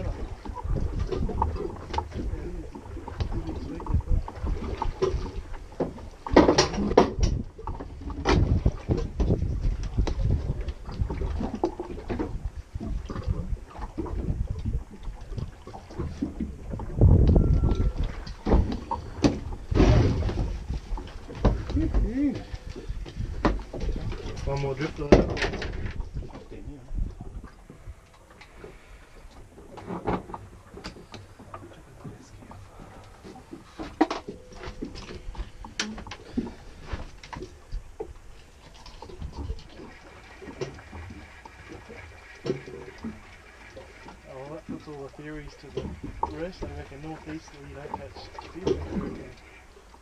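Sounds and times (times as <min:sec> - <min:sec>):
wind on microphone: 0:00.0 - 0:38.2
water against boat hull: 0:00.0 - 0:50.0.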